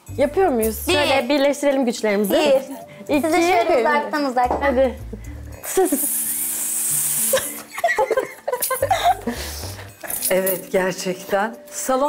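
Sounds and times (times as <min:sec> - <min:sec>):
background music: 0:00.0 - 0:12.0
laughter and voices: 0:05.6 - 0:06.2, 0:07.2 - 0:10.1
women hissing: 0:05.7 - 0:07.7.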